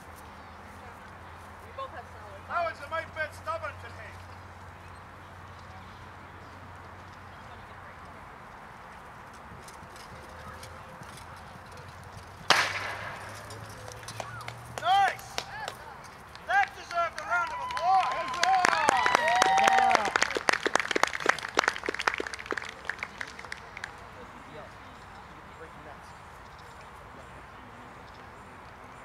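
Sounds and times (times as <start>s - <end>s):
sharp crack: 12.4s - 15.8s
spectators shouting and cheering: 13.0s - 20.5s
people clapping: 13.8s - 24.1s.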